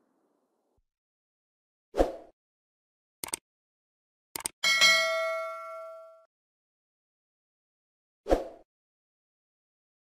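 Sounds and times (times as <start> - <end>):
bell-like ding: 4.6 - 6.3.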